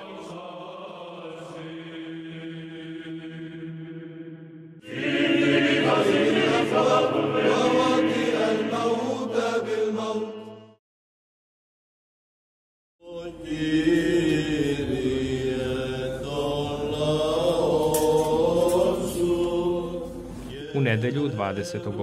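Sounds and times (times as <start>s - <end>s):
choral chant music: 0.0s - 10.8s, 13.0s - 22.0s
church chanting over drone: 0.0s - 10.8s, 13.0s - 22.0s.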